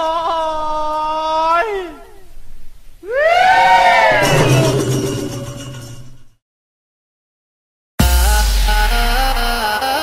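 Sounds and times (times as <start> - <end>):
person shouting a high cheer: 3.0 - 4.2.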